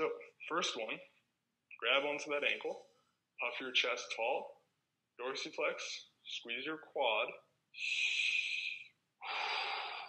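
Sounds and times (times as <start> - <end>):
man breathing heavily: 7.8 - 10.0.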